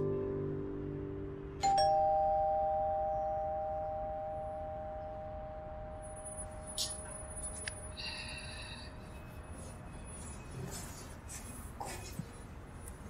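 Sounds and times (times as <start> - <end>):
two-tone doorbell chime: 1.6 - 7.4.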